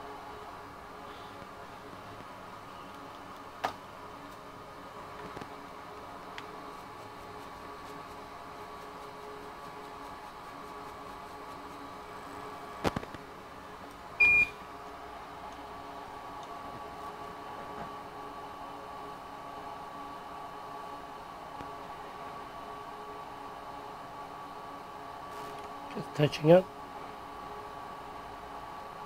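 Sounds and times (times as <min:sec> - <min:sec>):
fan hum: 0:00.0 - 0:29.0
short electronic beep: 0:14.2 - 0:14.6.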